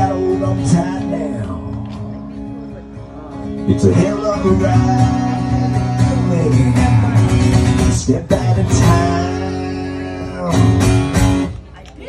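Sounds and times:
acoustic guitar strums: 0:00.0 - 0:11.6.

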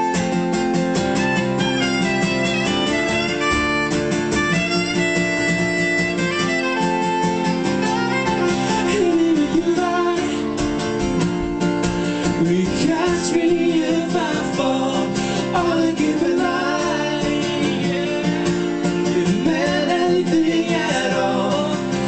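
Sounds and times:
strummed acoustic guitar: 0:00.0 - 0:22.0
saxophone solo: 0:01.2 - 0:09.2
person singing: 0:07.9 - 0:10.8, 0:12.2 - 0:22.0.

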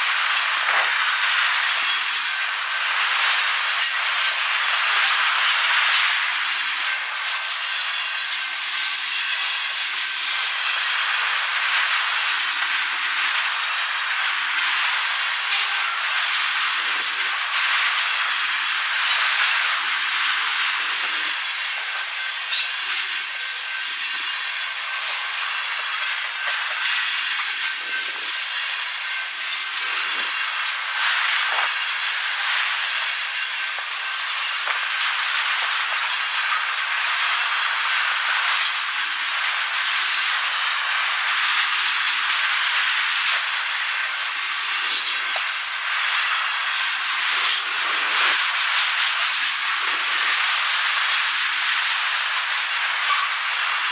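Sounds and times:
freight train wheels rushing on rail: 0:00.0 - 0:53.9
sharp clicks from train wheels: 0:00.0 - 0:53.9.

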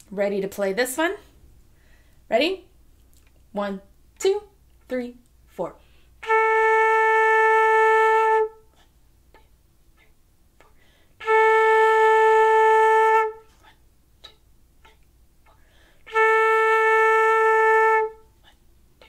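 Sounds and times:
flute playing long notes: 0:06.2 - 0:08.6, 0:11.2 - 0:13.4, 0:16.1 - 0:18.3.

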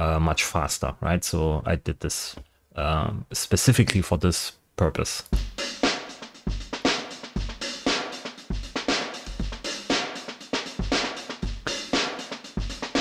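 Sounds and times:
hi-hats: 0:05.4 - 0:13.0
snare drum: 0:05.4 - 0:13.0
kick drum: 0:08.5 - 0:09.6.

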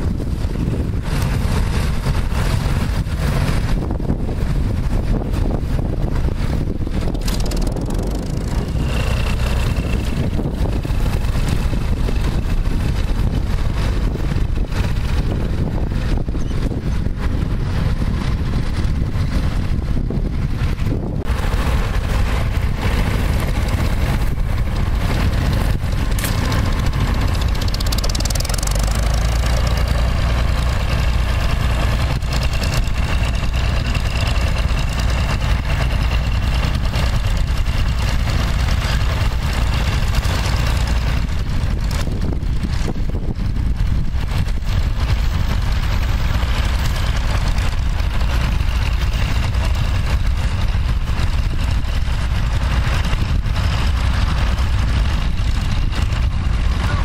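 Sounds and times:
tractor engine running under load: 0:00.0 - 0:57.0.

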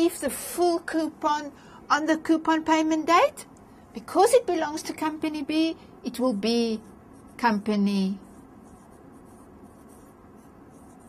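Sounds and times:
pen scratching while writing: 0:08.2 - 0:11.0.

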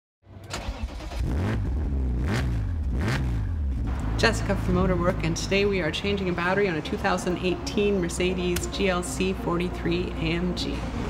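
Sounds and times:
car engine revving: 0:00.4 - 0:08.8.

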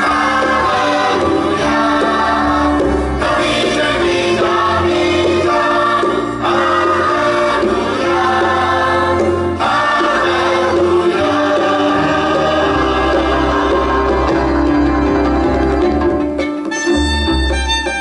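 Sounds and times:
children's choir singing: 0:00.0 - 0:15.4
instrumental accompaniment with bass: 0:00.0 - 0:18.0.

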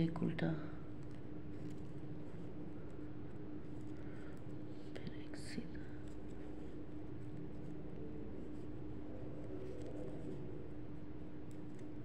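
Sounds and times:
steady low hum: 0:00.0 - 0:12.0
woman whispering: 0:05.0 - 0:05.9.

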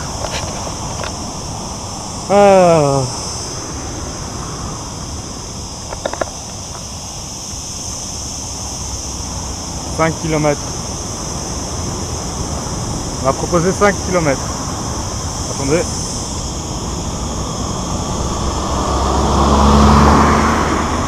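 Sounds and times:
passing traffic: 0:00.0 - 0:21.0
wind: 0:00.0 - 0:21.0
person calling out: 0:02.2 - 0:03.2.

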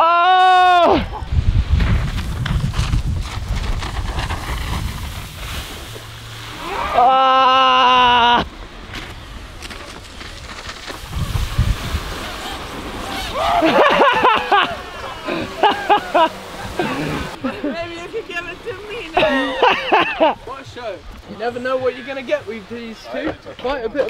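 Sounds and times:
wind rumbling on microphone: 0:00.8 - 0:07.1, 0:07.8 - 0:20.2
person's long held shout: 0:06.6 - 0:08.4, 0:13.2 - 0:13.8.

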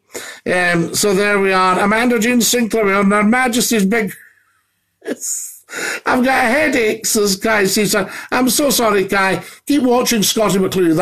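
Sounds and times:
man breathing: 0:00.0 - 0:00.5, 0:05.7 - 0:06.1, 0:08.1 - 0:08.3.

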